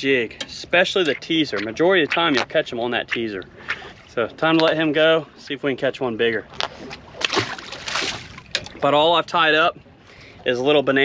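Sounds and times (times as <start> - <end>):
water splash and slosh: 0.8 - 5.2, 6.3 - 9.3.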